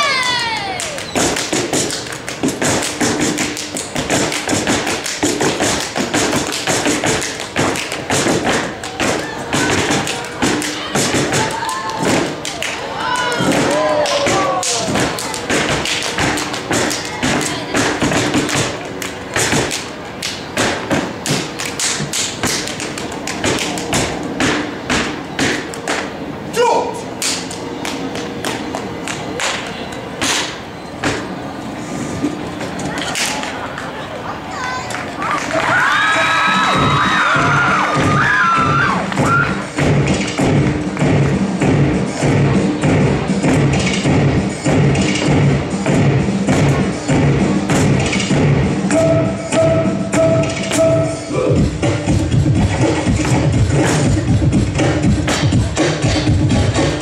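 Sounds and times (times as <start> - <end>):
stomps claps and body slaps: 0.8 - 26.1.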